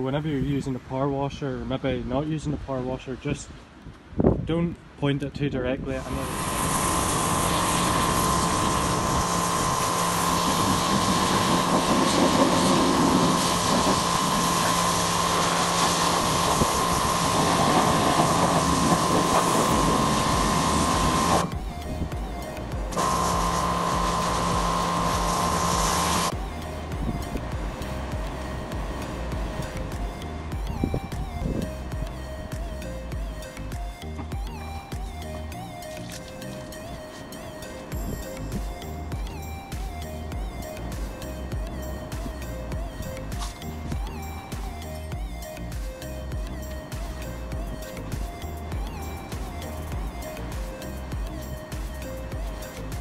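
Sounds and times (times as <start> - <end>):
background music: 6.0 - 53.0
pressure washer running: 6.0 - 53.0.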